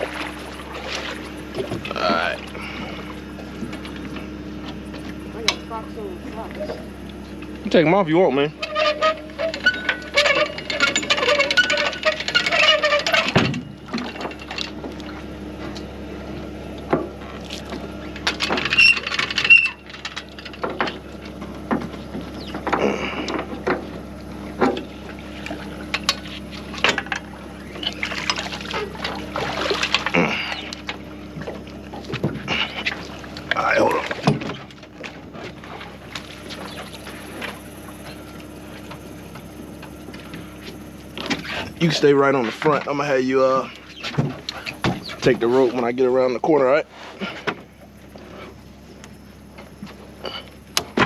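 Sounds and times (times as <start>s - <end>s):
faint steady hum: 0.0s - 51.0s
water splashing around a boat: 0.0s - 51.0s
gear clicking and knocking: 8.6s - 15.9s.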